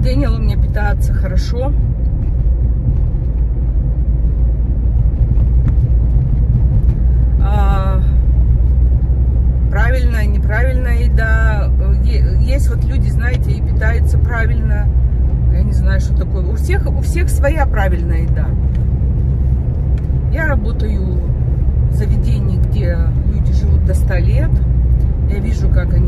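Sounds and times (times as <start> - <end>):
woman talking: 0.0 - 1.8, 7.4 - 8.3, 9.6 - 18.7, 20.3 - 24.7, 25.3 - 26.0
car cabin rumble: 0.0 - 26.0.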